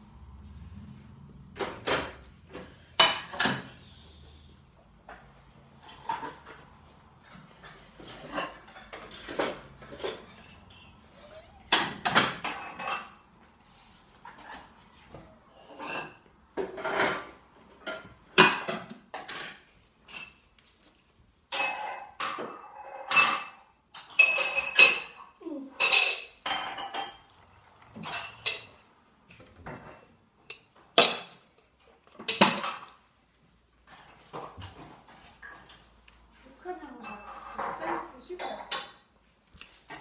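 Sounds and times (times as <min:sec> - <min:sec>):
dishes and cutlery clinking: 0:01.5 - 0:04.4, 0:05.0 - 0:40.0
glass clinking: 0:20.1 - 0:20.6.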